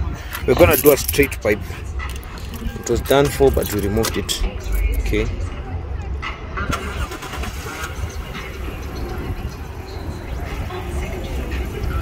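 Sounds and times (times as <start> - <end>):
car engine starting: 6.6 - 9.9.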